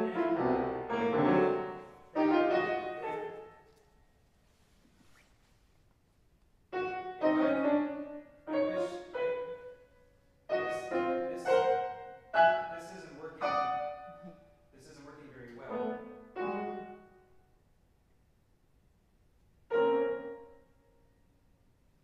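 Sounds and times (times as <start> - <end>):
piano chords ringing: 0.0 - 4.0, 6.7 - 17.6, 19.7 - 21.4.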